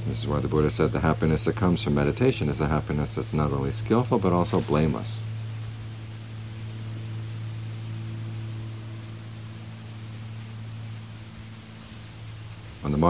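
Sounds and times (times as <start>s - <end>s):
background hiss: 0.0s - 13.0s
steady low hum: 0.0s - 13.0s.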